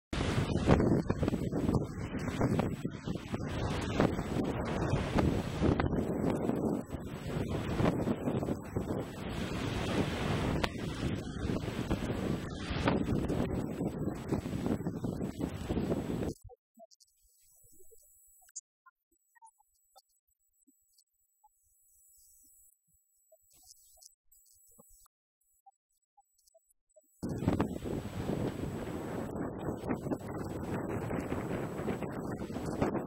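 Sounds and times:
choppy water: 0:00.1 - 0:17.0, 0:27.2 - 0:33.0
wind buffeting microphone: 0:00.2 - 0:16.4, 0:27.2 - 0:33.0.

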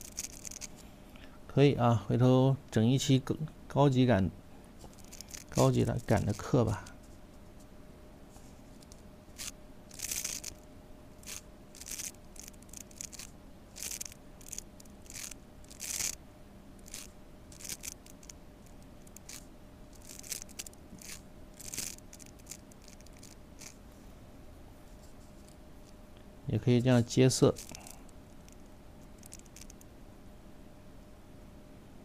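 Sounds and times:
faint steady hum: 0:00.0 - 0:32.0
paintbrush strokes on paper: 0:04.9 - 0:07.2.

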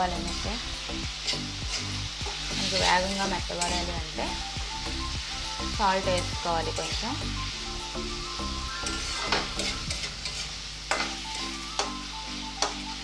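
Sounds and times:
vegetables sizzling in oil: 0:00.0 - 0:13.0
metal spatula scraping pan: 0:01.2 - 0:04.0, 0:08.7 - 0:12.0.

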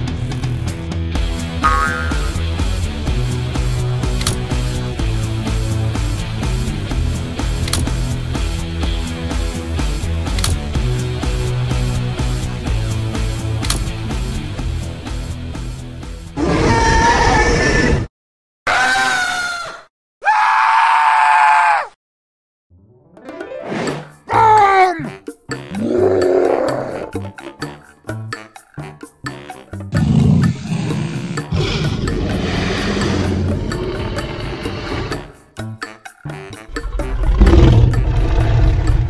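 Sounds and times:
screeching dinosaur roar: 0:16.4 - 0:18.1, 0:25.7 - 0:27.2, 0:29.9 - 0:35.4, 0:36.7 - 0:39.0.

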